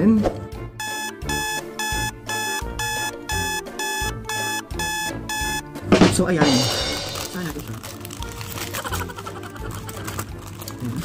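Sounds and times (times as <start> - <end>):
background music: 0.0 - 11.0
short electronic beeps: 0.8 - 5.7.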